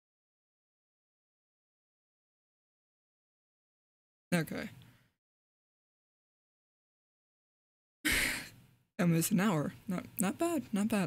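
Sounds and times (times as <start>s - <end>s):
woman sighing: 8.1s - 8.6s.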